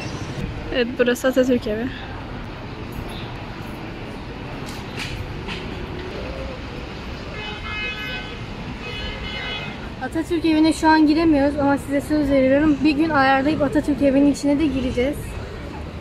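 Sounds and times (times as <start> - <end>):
city street traffic: 0.0 - 16.0.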